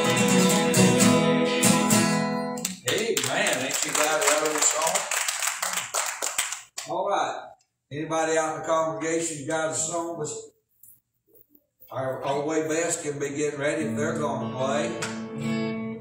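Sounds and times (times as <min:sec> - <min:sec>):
acoustic guitars strumming: 0:00.0 - 0:03.0, 0:13.2 - 0:16.0.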